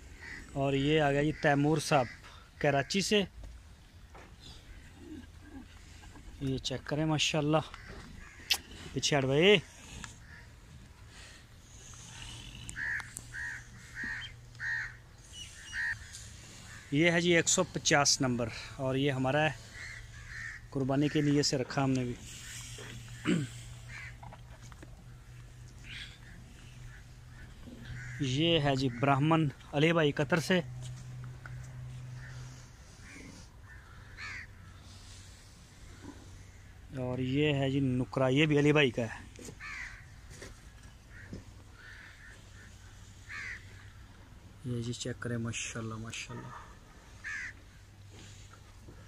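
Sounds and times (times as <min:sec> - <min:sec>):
bird calling: 0:00.0 - 0:03.4, 0:04.1 - 0:06.5, 0:07.6 - 0:09.0, 0:09.6 - 0:29.7, 0:31.0 - 0:36.9, 0:39.4 - 0:44.3, 0:46.1 - 0:48.7
crow cawing: 0:00.2 - 0:00.6, 0:07.6 - 0:08.6, 0:12.8 - 0:17.0, 0:19.6 - 0:21.5, 0:22.4 - 0:24.2, 0:25.8 - 0:29.6, 0:32.1 - 0:34.9, 0:39.6 - 0:40.2, 0:41.1 - 0:44.0, 0:47.2 - 0:48.3.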